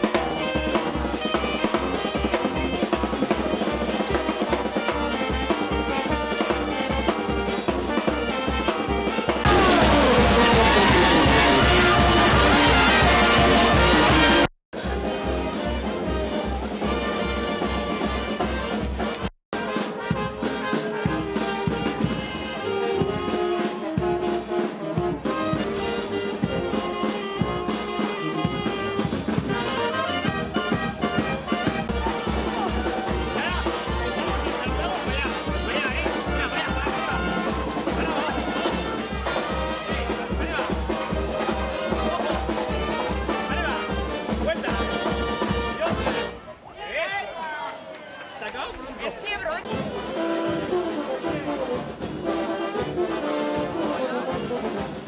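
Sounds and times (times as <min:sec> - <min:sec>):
low drum beat: 0:00.0 - 0:46.3
brass band playing dance tune: 0:00.0 - 0:46.6, 0:48.6 - 0:55.0.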